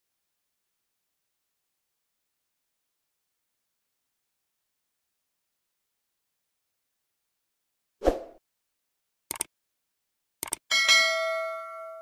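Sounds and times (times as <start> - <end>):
notification bell ding: 10.7 - 12.0.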